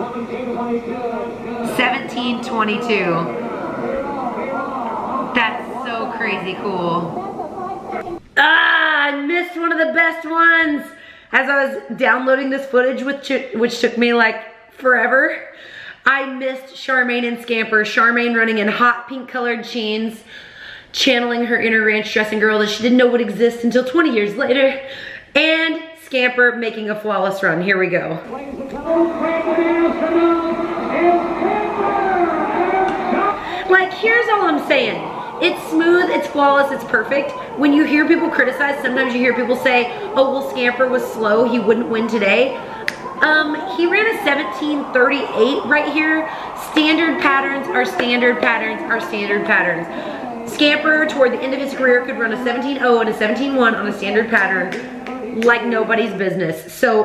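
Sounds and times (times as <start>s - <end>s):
woman wailing: 32.0s - 46.6s.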